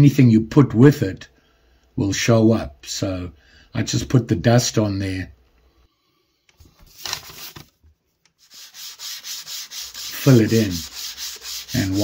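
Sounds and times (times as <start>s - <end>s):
fingers rustling wood dust: 8.4s - 12.0s.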